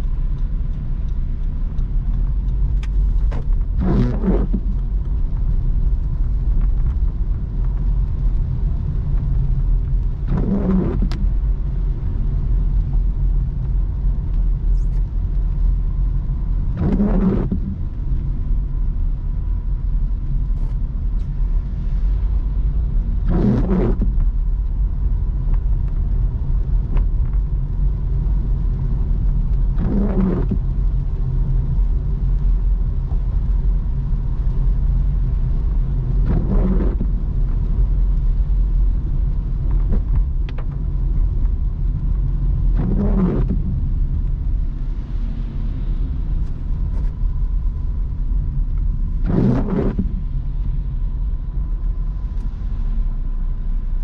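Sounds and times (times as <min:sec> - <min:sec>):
car rumbling on wet road: 0:00.0 - 0:54.0
windshield wiper sweeping: 0:01.0 - 0:19.4, 0:20.5 - 0:53.9.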